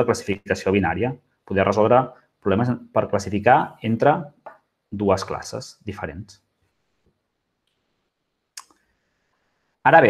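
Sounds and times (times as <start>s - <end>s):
man speaking: 0.0s - 6.5s.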